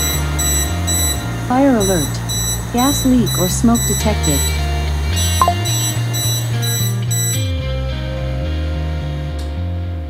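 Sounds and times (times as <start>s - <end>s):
smoke alarm beeping: 0.0s - 7.5s
background music with bass line: 4.2s - 10.0s.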